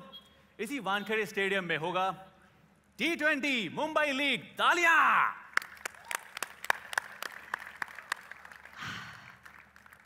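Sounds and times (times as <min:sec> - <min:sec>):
people clapping: 0:05.5 - 0:10.0.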